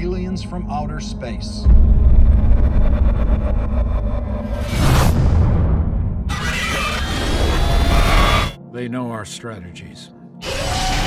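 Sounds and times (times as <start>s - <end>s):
deep steady rumble: 0.0s - 6.4s.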